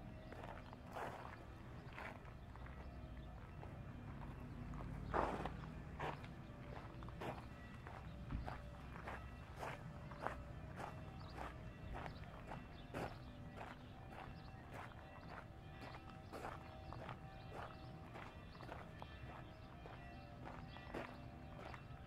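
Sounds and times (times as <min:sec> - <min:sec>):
footsteps on paved and gravel paths: 0:00.0 - 0:22.0.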